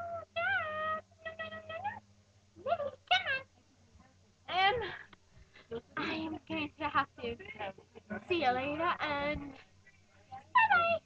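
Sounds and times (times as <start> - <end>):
puppy whining cry: 0.0 - 1.2.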